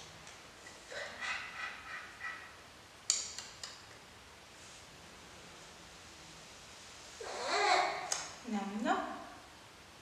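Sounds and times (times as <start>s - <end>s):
baby squealing and babbling: 7.2s - 8.1s.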